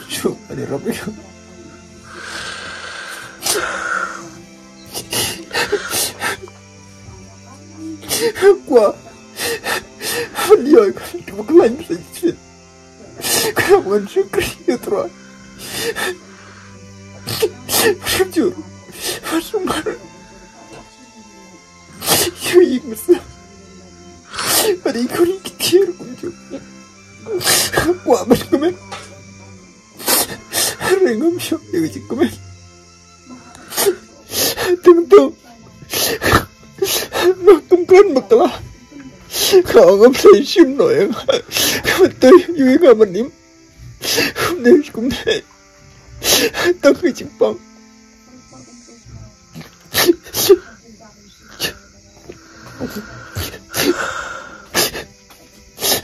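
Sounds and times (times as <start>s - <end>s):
background music with low tone: 0.0s - 56.0s
man's sharp breath bursts: 2.0s - 6.4s, 15.2s - 18.0s, 24.3s - 24.8s
man sobbing: 4.9s - 6.5s, 15.6s - 16.2s, 24.5s - 26.6s, 40.4s - 42.7s.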